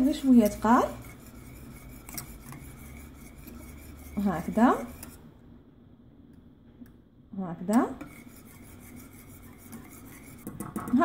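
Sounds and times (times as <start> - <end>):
whisk scraping a metal saucepan: 0.0 - 5.2, 7.7 - 11.0.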